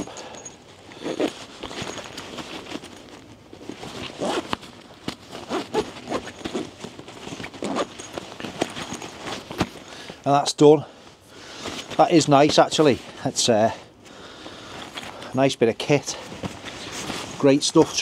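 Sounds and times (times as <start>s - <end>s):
fabric rustling: 0.0s - 10.4s, 14.4s - 18.0s
zipper being pulled closed: 0.9s - 2.9s, 3.8s - 9.7s.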